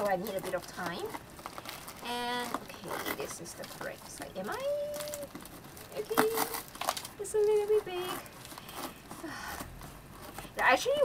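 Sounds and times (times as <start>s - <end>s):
packaging rustling and crinkling: 0.0s - 11.0s.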